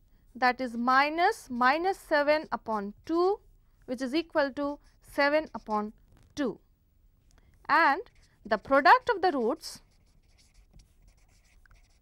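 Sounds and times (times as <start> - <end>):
marker scratching on paper: 0.5 - 3.2, 4.2 - 6.0, 8.0 - 12.0.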